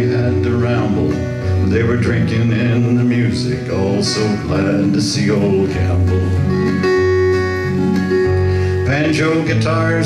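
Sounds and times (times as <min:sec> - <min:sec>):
acoustic guitar chords: 0:00.0 - 0:10.0
person singing folk song: 0:00.0 - 0:10.0.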